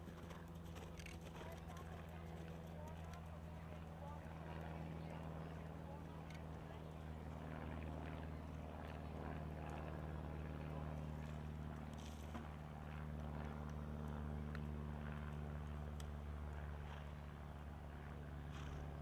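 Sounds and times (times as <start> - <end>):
faint indistinct voices: 1.2 - 11.5.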